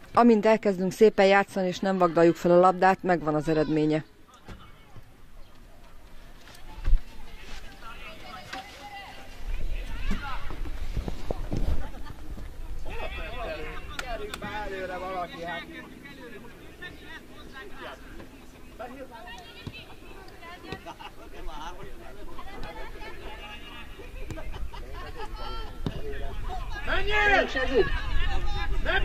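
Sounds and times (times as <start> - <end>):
distant voices shouting: 12.6 - 29.0.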